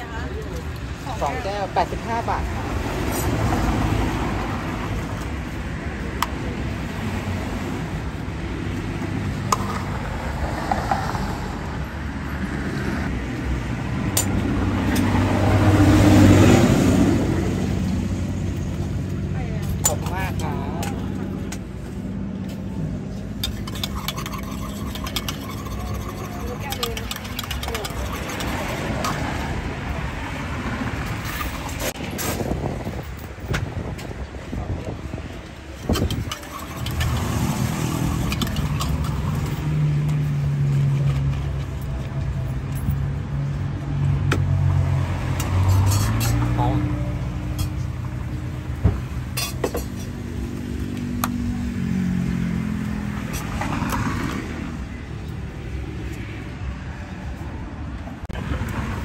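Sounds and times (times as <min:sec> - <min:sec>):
passing road traffic: 0:00.0 - 0:59.0
utensils clinking: 0:23.4 - 0:29.2, 0:35.8 - 0:39.8, 0:45.5 - 0:46.4.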